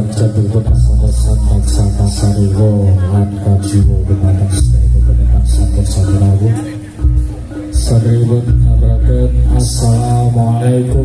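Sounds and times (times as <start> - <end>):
man chanting into a microphone: 0.0 - 6.9, 7.7 - 11.0.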